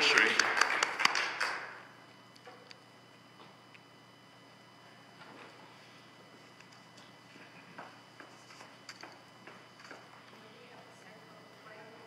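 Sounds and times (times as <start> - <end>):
scattered hand claps: 0.0 - 1.8.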